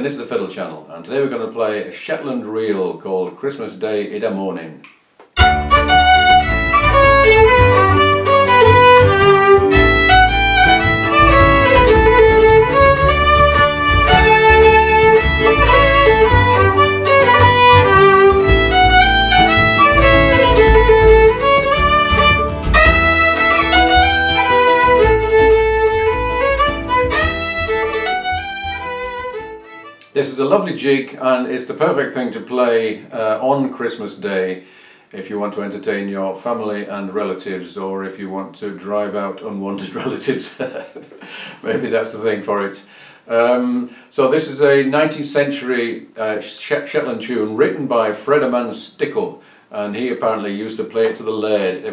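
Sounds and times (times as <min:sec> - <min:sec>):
low bass accompaniment: 0:05.4 - 0:29.9
fiddle playing lively melody: 0:05.4 - 0:30.1.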